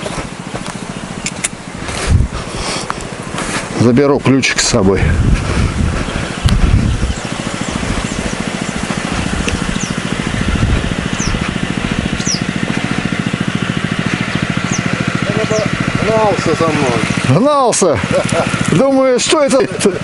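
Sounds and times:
small engine idling: 0.0s - 20.0s
bird chirps: 6.0s - 10.1s, 11.0s - 12.5s, 14.1s - 15.8s.

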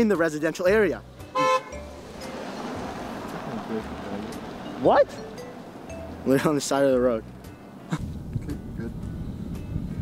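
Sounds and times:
passing traffic: 0.0s - 10.0s
car horn toot: 1.3s - 1.9s.

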